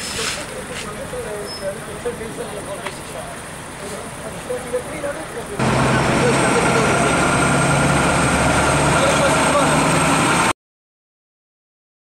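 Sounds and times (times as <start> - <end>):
people talking: 0.0 - 7.6, 8.8 - 10.0
vehicle engine idling: 0.1 - 10.5.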